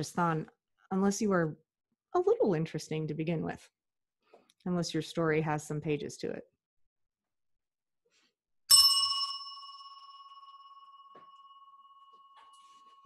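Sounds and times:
small bell ringing: 8.7s - 13.0s.

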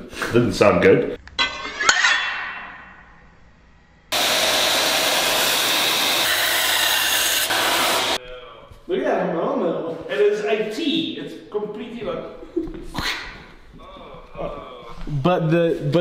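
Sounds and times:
belt grinder grinding steel: 4.2s - 8.2s.

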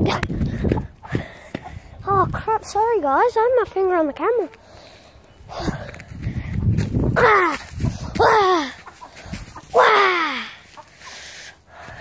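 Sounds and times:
chicken squawking: 7.2s - 11.4s.

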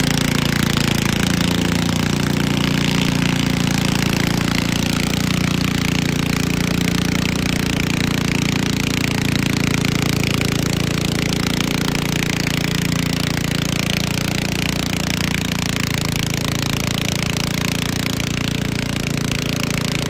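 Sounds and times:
garden tractor engine running: 0.0s - 20.0s.

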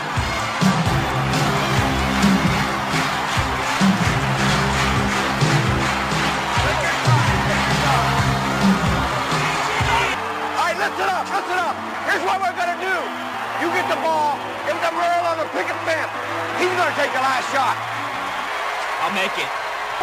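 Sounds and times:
music with low chords and beat: 0.2s - 10.2s.

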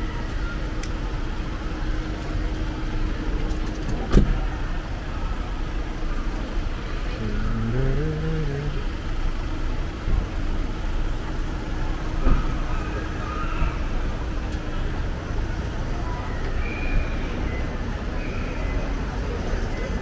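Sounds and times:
idling vehicles and traffic: 0.0s - 20.0s
sliding van door shut: 3.8s - 4.5s.

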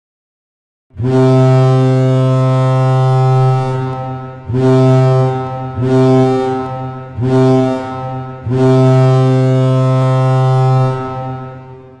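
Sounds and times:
hockey goal horn blasts: 1.0s - 12.0s.

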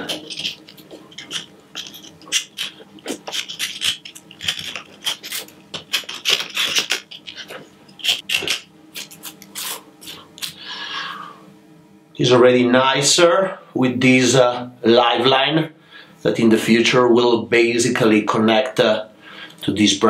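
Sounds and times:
knife scraping bark: 0.0s - 10.3s.

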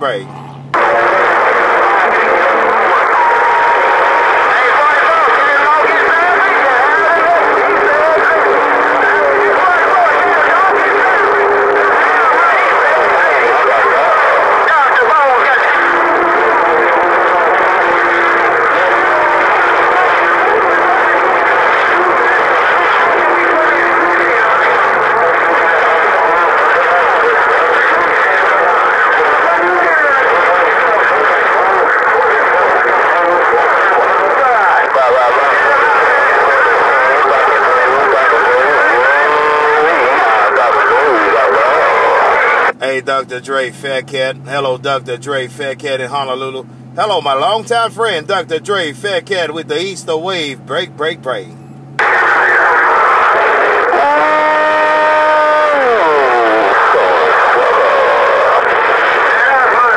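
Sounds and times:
garbled radio voices babbling: 0.0s - 59.9s
steady tones: 0.0s - 59.9s.

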